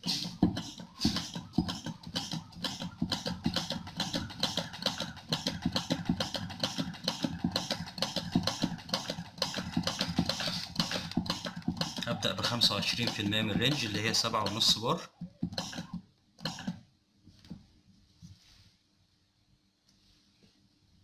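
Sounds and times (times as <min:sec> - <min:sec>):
hand pressure pump clicking: 0:00.1 - 0:14.7, 0:15.5 - 0:16.8.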